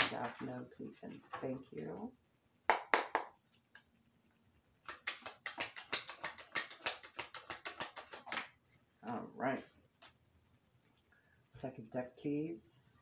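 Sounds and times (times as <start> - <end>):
cards being shuffled: 4.8 - 8.6.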